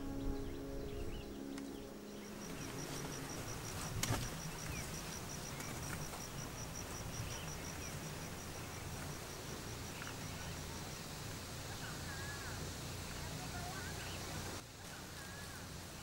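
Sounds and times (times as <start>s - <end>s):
insect chirping: 0.0s - 16.0s.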